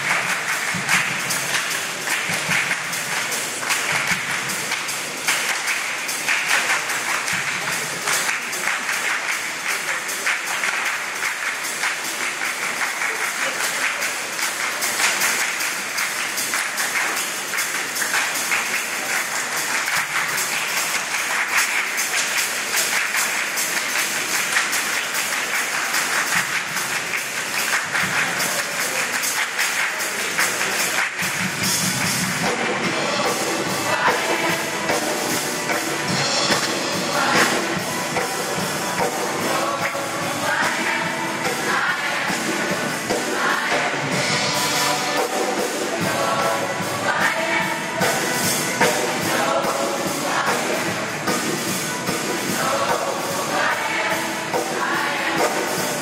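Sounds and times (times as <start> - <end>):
rhythmic hand claps: 0.0 - 56.0
choir singing: 32.4 - 56.0.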